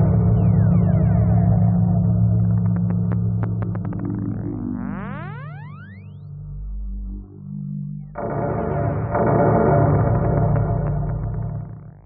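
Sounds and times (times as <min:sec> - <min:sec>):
synthesizer tones gliding upward: 0:00.0 - 0:08.8
deep bass note: 0:00.0 - 0:12.0
low synth drone: 0:00.0 - 0:12.0.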